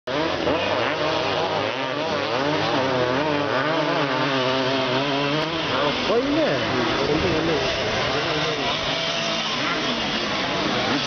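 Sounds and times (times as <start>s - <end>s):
dirt bike engines racing: 0.1s - 11.0s.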